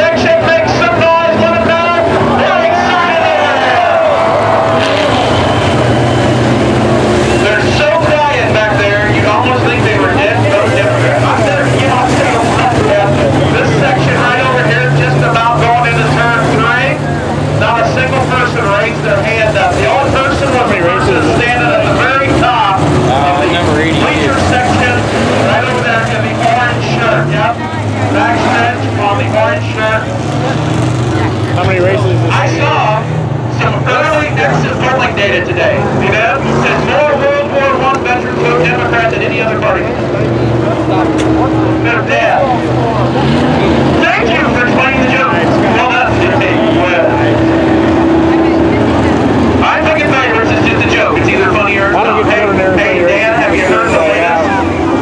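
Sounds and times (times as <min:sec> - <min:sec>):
race car engines running: 0:00.0 - 0:55.0
spectators talking: 0:00.0 - 0:55.0.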